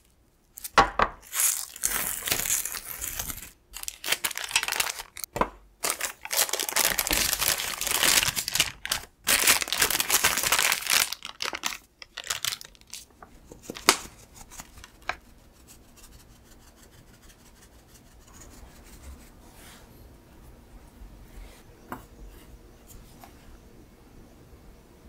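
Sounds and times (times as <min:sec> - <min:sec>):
parchment paper crinkling: 0:00.0 - 0:15.4.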